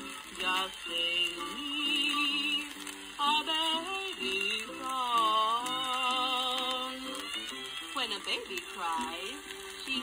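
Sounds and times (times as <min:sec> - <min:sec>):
violin guitar and piano accompaniment: 0:00.0 - 0:10.0.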